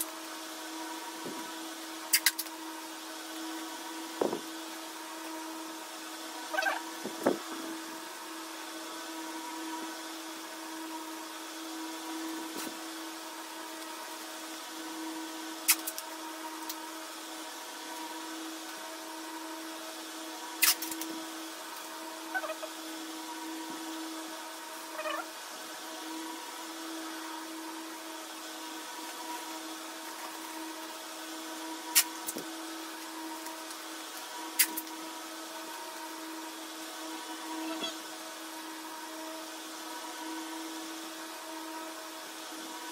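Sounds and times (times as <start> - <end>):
machine hum: 0.0 - 42.9.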